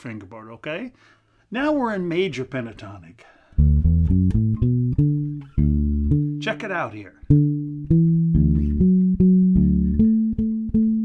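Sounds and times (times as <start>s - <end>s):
bass guitar plucked notes: 3.6s - 11.0s.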